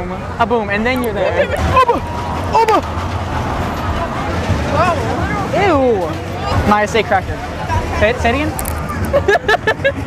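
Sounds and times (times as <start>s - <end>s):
indistinct crowd chatter: 0.0s - 10.0s.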